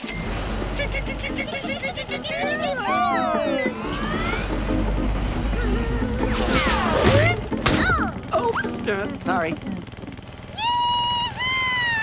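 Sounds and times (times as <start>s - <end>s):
background music: 0.0s - 10.4s
massage couch vibrating: 7.2s - 10.8s.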